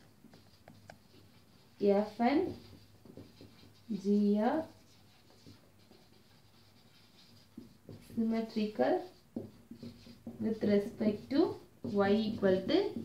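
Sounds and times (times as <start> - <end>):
marker scratching on whiteboard: 0.0 - 13.0
woman speaking: 1.8 - 2.7, 3.9 - 4.8, 8.1 - 9.2, 10.4 - 13.0.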